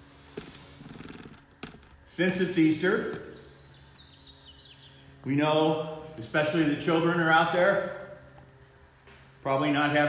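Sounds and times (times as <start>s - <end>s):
steady low hum: 0.0s - 10.0s
small bird chirping: 3.2s - 5.2s
man speaking: 5.2s - 8.2s.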